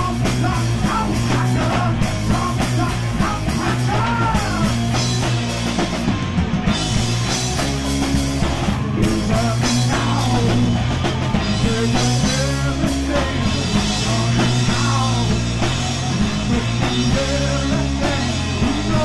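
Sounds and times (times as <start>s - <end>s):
person singing: 0.0s - 4.8s, 8.8s - 10.8s, 11.4s - 19.0s
rock band playing loud: 0.0s - 19.0s.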